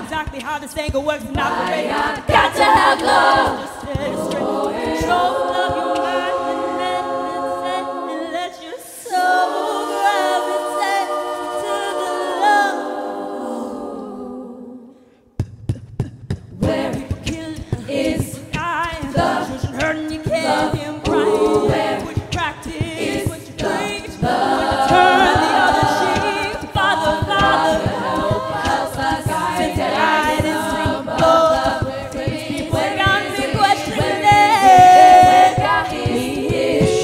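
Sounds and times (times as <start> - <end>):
vocal percussion beat: 0.0 - 12.9, 15.4 - 37.0
women singing in harmony: 1.1 - 15.0, 16.6 - 37.0.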